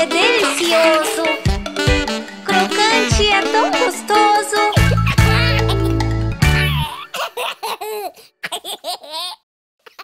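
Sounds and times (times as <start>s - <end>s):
children's song: 0.0s - 6.0s
cartoon voices giggling: 4.6s - 10.0s.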